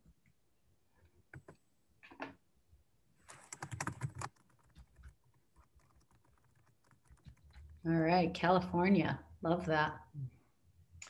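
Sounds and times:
typing on computer keyboard: 3.3 - 7.8.

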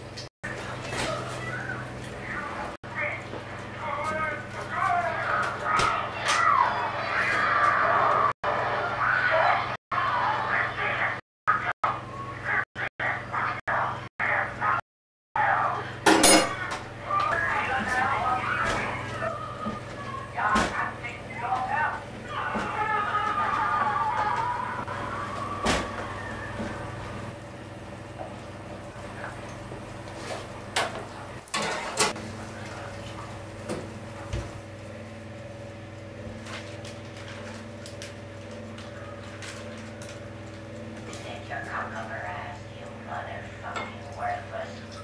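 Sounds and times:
indistinct voices: 15.4 - 27.4
oven door clanking: 16.1 - 16.8, 30.8 - 32.2.

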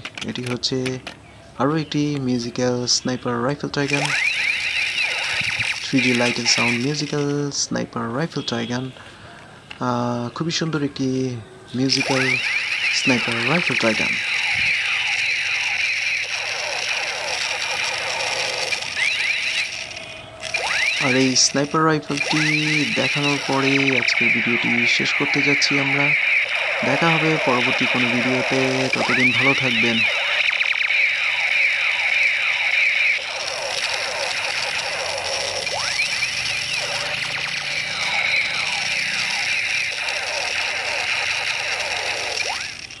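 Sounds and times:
toy gun electronic sound effect: 2.2 - 7.5, 11.8 - 43.0.

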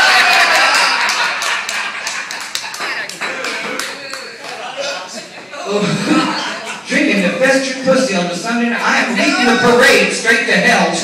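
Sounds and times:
audience laughing: 0.0 - 6.9
scattered clapping: 0.2 - 4.7.

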